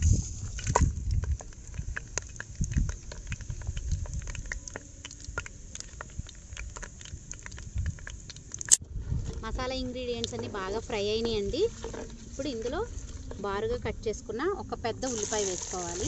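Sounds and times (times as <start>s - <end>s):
spices sizzling in hot oil: 15.0s - 16.0s
loud hiss of spices hitting oil: 15.1s - 16.0s.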